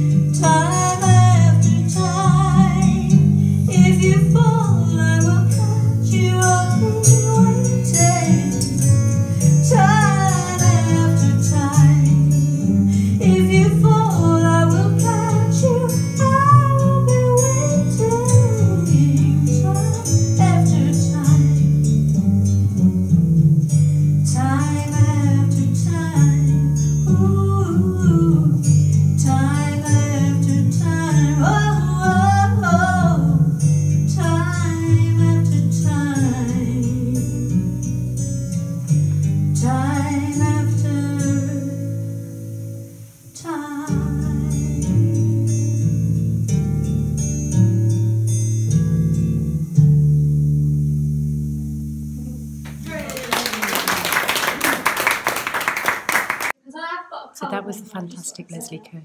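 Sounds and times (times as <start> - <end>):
woman singing into a microphone: 0.0 - 21.8, 24.2 - 38.0, 39.5 - 42.1, 43.3 - 45.4
guitar backing track: 0.0 - 56.5.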